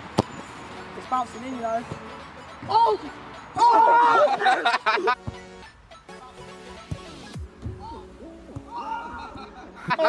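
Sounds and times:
young men hooting: 2.7s - 5.2s, 7.8s - 10.0s
men laughing: 3.6s - 5.3s, 8.8s - 10.0s.

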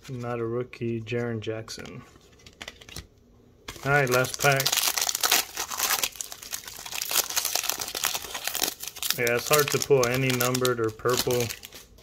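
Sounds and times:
foil wrapper crinkling: 3.7s - 12.0s.

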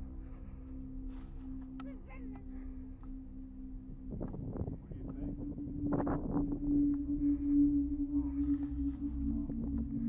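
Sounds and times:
low droning hum: 0.0s - 10.0s
low rumble: 4.0s - 10.0s.

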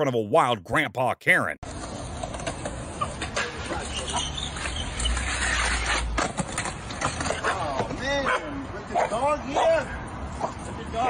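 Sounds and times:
man's voice: 0.0s - 1.6s
skateboard grinding on concrete: 1.6s - 8.0s
dog barking: 8.2s - 9.7s.

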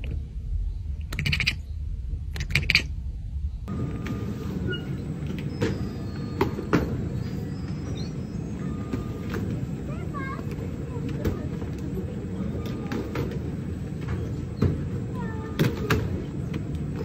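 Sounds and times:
baggage carousel rumbling: 3.7s - 17.0s.

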